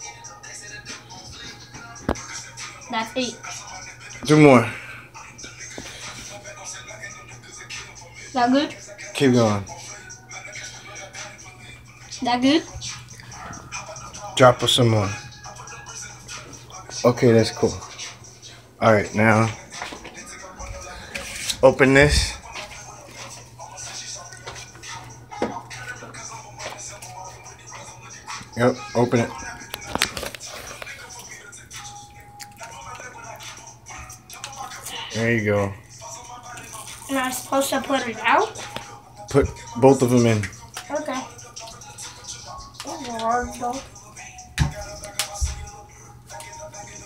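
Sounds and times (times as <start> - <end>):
background music: 0.0 - 47.0
foil packet crinkling: 29.7 - 31.1.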